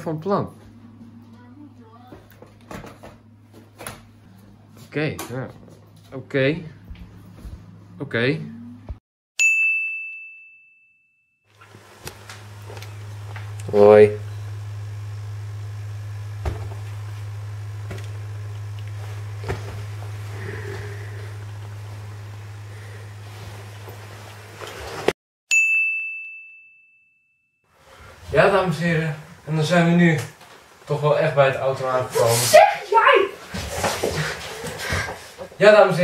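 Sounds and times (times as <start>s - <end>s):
low room hum: 0.0s - 9.0s, 11.6s - 25.1s
bright bell-like ding: 9.4s - 11.1s, 25.5s - 27.3s.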